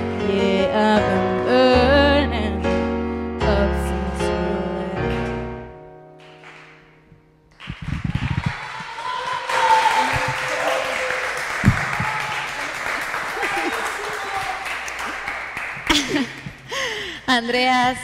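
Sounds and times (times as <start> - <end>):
audience applauding: 6.2 - 6.8, 7.5 - 16.8
shouts and whoops: 8.0 - 12.7, 13.3 - 14.8.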